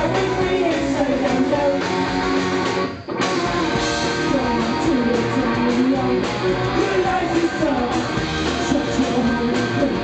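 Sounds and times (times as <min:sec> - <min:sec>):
electric guitar: 0:00.0 - 0:10.0
punk rock band playing: 0:00.0 - 0:10.0.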